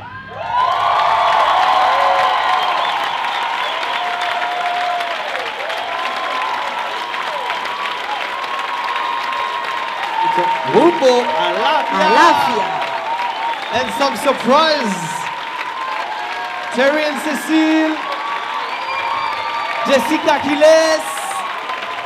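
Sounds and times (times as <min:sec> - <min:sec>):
audience applause and cheering: 0:00.0 - 0:22.0
whoops and shouts: 0:00.0 - 0:22.0.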